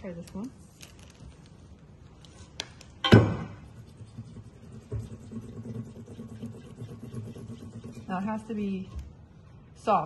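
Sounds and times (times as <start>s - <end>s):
soap scrubbing on mesh: 3.7s - 8.6s.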